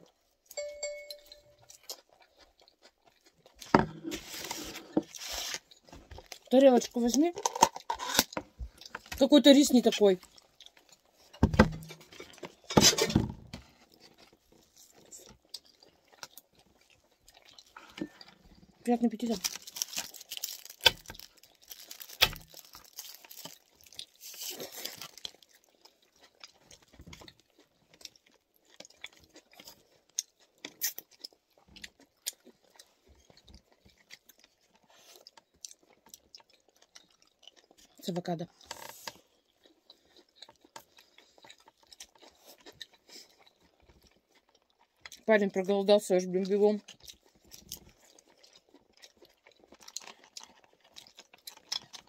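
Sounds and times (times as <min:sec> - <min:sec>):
chewing and crunching food: 0:00.0 - 0:52.0.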